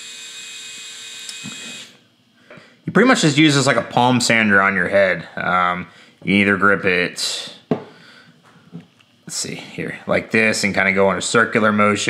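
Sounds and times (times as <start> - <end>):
electric shaver motor whine: 0.0 - 2.1.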